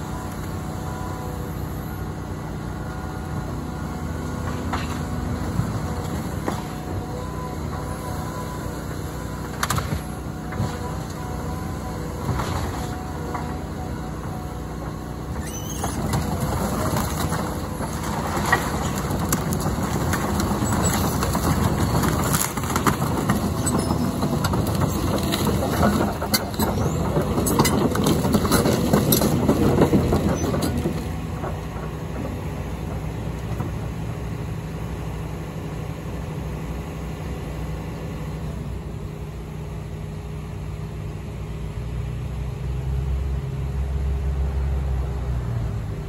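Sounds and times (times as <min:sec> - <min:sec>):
excavator diesel engine: 0:00.0 - 0:46.0
debris crunching and clattering: 0:15.8 - 0:33.8.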